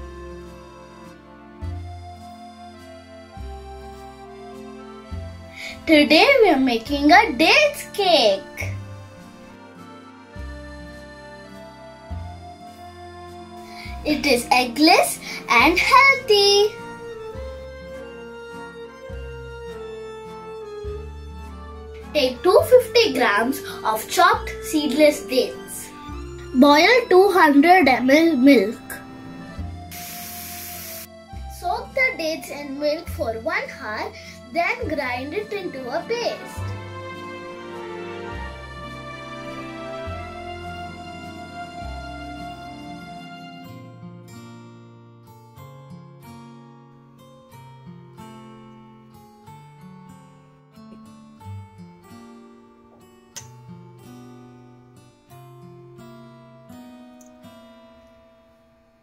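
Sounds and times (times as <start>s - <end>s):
plucked acoustic guitar melody: 0.0s - 30.2s, 31.1s - 58.6s
background music: 0.0s - 59.0s
milk boiling with steady hiss: 29.9s - 31.1s.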